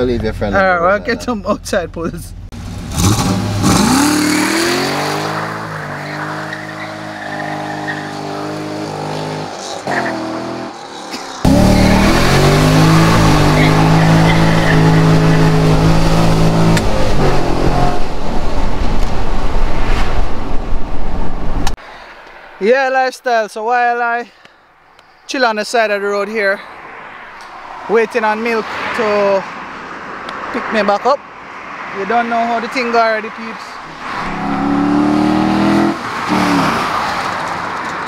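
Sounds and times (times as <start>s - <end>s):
car engine revving: 2.4s - 19.6s, 33.8s - 37.8s
tyre squeal: 5.7s - 15.9s.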